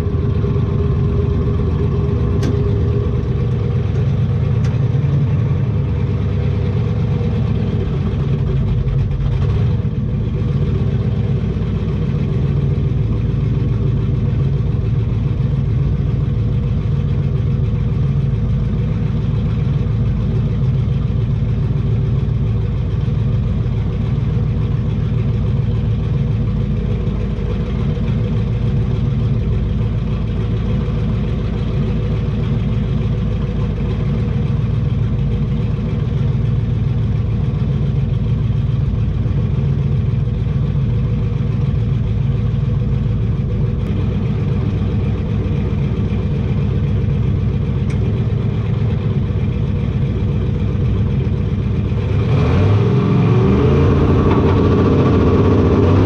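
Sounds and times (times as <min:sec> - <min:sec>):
truck engine idling: 0:00.0 - 0:56.0.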